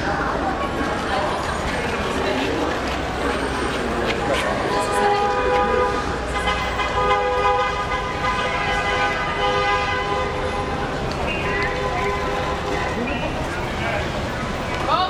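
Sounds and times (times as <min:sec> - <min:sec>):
crowd chatter: 0:00.0 - 0:15.0
traffic noise: 0:00.0 - 0:15.0
vehicle horn honking: 0:04.8 - 0:13.0.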